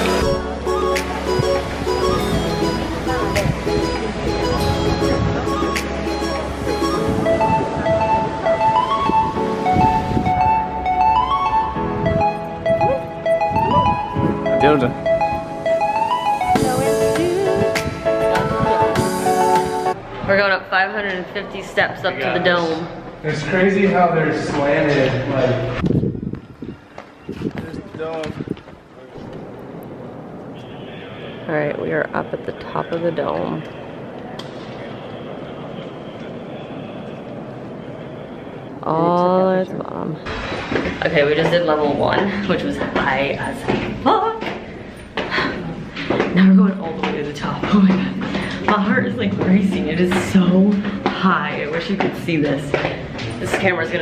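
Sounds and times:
instrumental background music: 0:00.0 - 0:20.0.

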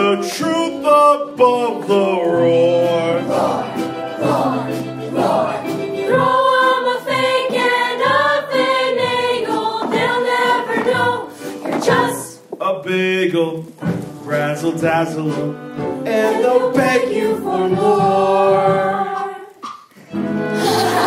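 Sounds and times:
chorus singing show tune: 0:00.0 - 0:21.0
musical accompaniment: 0:00.0 - 0:21.0.

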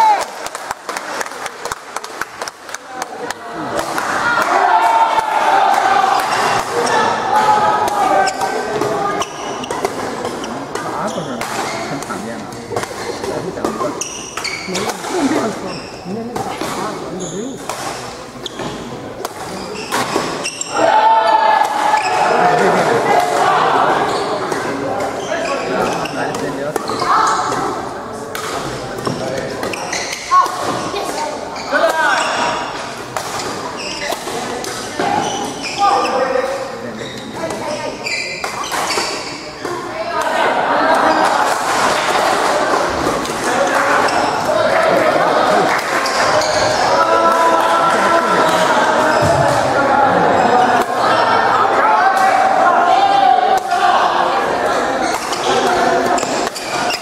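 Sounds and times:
people chattering: 0:00.0 - 0:57.0
rackets hitting shuttlecock: 0:07.8 - 0:15.3.

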